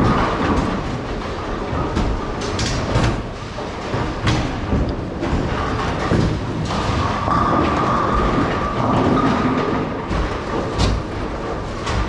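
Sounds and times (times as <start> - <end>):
bowling balls rolling: 0.0 - 12.0
pinsetter machinery rumbling: 0.0 - 12.0.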